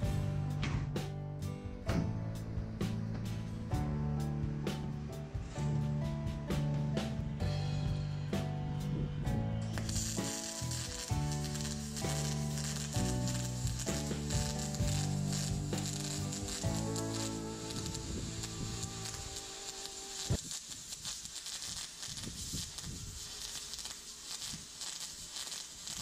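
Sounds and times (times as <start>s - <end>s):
background music: 0.0s - 20.3s
welding arc crackling: 9.6s - 26.0s.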